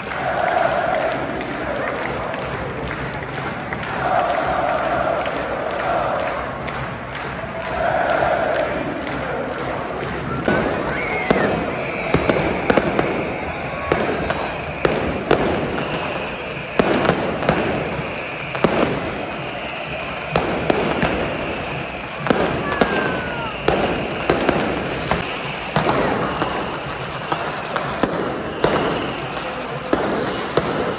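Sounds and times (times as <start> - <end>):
fireworks bangs: 10.3 - 30.9
firework whistle: 10.5 - 30.9.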